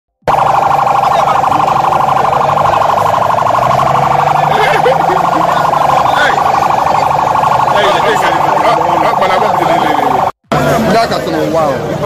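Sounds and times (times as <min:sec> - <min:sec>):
warbling siren: 0:00.2 - 0:10.4.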